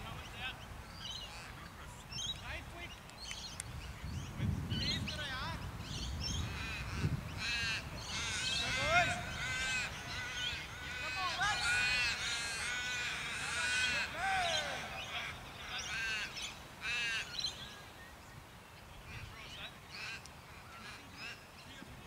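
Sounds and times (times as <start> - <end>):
crows cawing: 6.4 - 17.6, 19.9 - 21.4.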